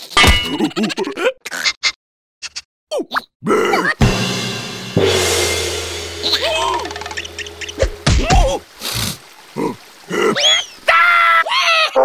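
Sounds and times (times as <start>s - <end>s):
squeaky cartoon vocalisations: 0.6s - 4.0s, 10.3s - 10.8s
musical swell with low hum: 4.1s - 8.6s.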